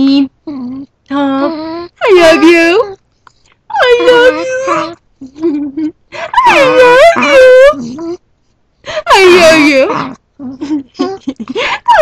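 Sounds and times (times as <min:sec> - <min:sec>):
dog crying: 0:00.4 - 0:03.0, 0:03.7 - 0:08.2, 0:08.9 - 0:12.0.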